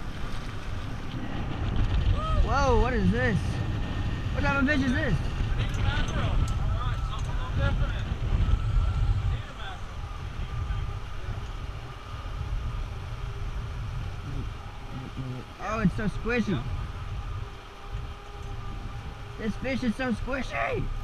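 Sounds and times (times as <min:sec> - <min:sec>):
wind buffeting microphone: 0:00.0 - 0:21.0
faint voices: 0:04.3 - 0:21.0.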